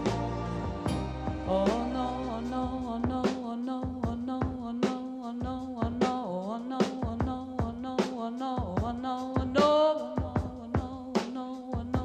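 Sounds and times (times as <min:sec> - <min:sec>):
band playing: 0:00.0 - 0:03.1
steady drum beat: 0:00.0 - 0:12.0
woman singing a pop ballad: 0:00.9 - 0:12.0.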